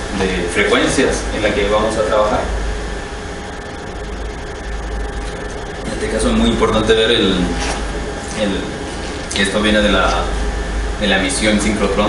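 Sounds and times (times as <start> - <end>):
ventilation hiss and hum: 0.0 - 12.0.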